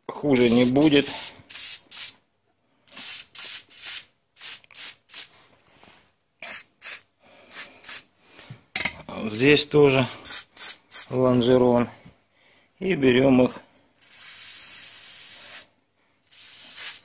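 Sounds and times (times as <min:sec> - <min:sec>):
aerosol can squirts hissing: 0:14.0 - 0:15.7, 0:16.3 - 0:17.0.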